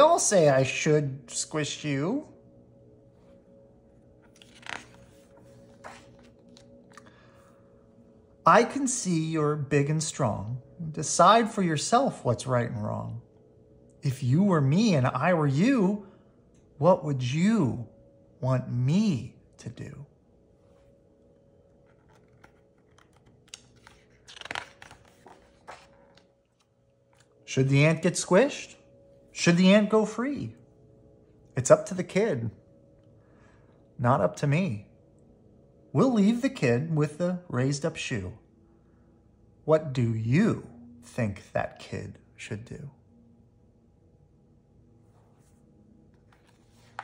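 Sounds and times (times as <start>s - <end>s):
paper page rustling: 4.2s - 7.0s, 21.7s - 27.4s, 46.2s - 47.0s.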